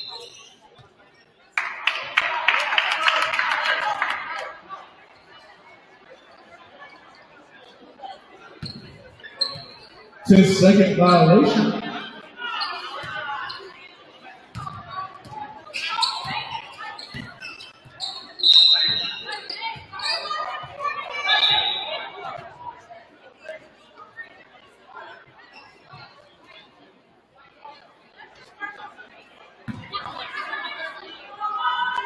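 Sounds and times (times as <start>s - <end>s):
shouts and voices echoing: 10.3s - 12.6s.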